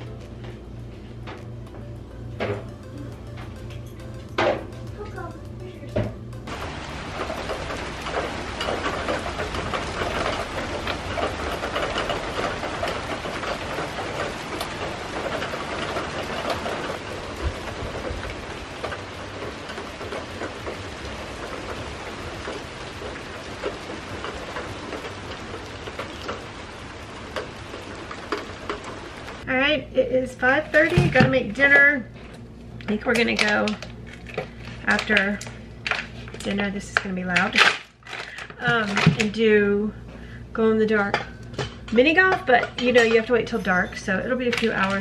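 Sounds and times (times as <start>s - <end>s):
background music: 0.0s - 11.0s
steady rain falling: 4.8s - 29.5s.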